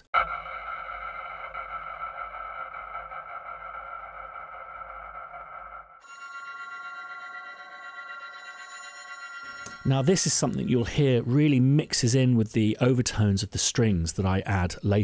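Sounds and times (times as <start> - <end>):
electric guitar drone: 0.0 - 9.9.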